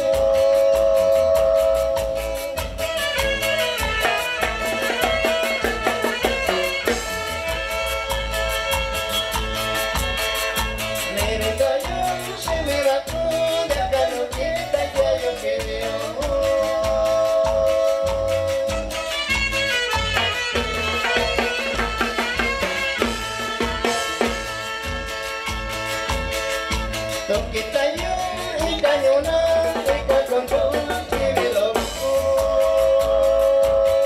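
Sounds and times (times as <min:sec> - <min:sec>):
dance music by small band: 0:00.0 - 0:34.0.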